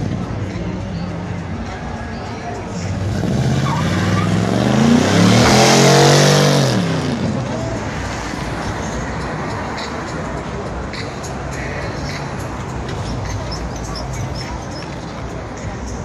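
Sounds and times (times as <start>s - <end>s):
car engine revving: 2.8s - 8.2s.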